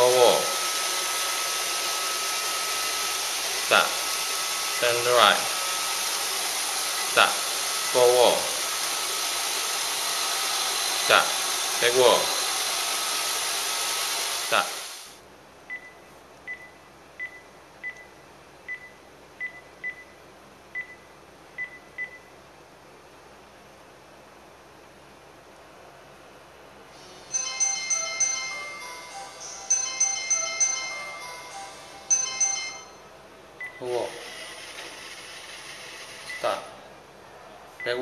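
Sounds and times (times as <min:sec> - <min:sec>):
mobile phone melody ringtone: 0:27.3 - 0:33.1.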